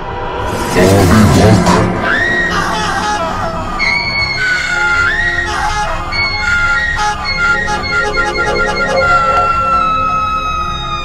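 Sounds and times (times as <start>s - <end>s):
people screaming in fright: 2.0s - 7.8s
long high-pitched scream: 2.1s - 11.0s.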